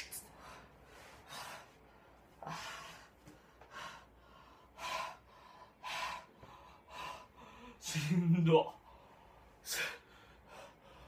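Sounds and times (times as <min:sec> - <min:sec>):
man panting heavily: 0:00.3 - 0:08.2, 0:08.8 - 0:11.0.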